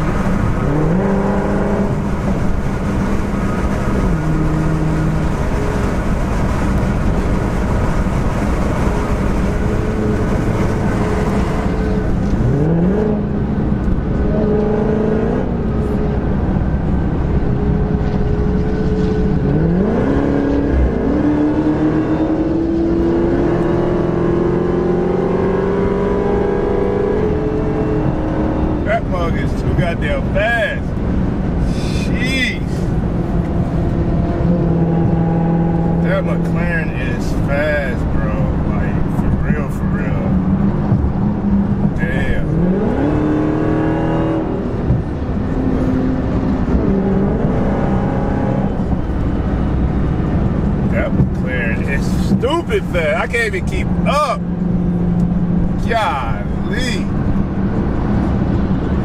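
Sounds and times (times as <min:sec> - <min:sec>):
car engine accelerating: 0:00.0 - 0:59.0
road noise: 0:00.0 - 0:59.0.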